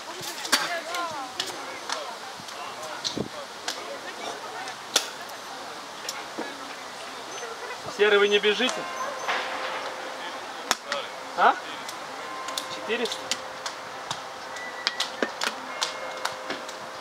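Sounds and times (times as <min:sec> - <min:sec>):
distant voices: 0:00.0 - 0:17.0.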